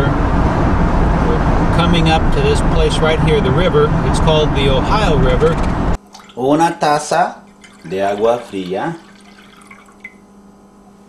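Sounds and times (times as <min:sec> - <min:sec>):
water trickling into pan: 0:07.5 - 0:10.2.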